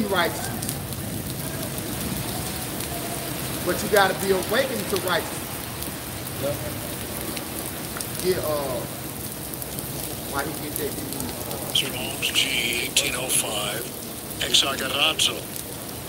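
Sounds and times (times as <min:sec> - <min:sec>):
murmured voices: 0:00.0 - 0:05.6, 0:10.3 - 0:15.6
rain on wet street: 0:00.0 - 0:16.0.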